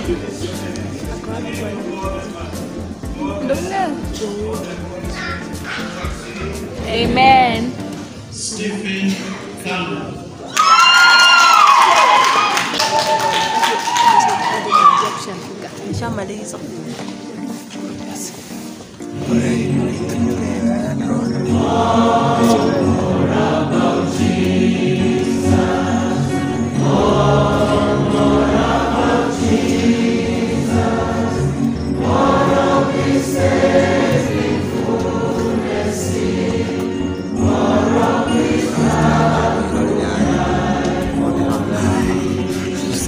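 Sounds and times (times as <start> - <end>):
choir singing gospel song: 0.0 - 5.0, 19.0 - 43.0.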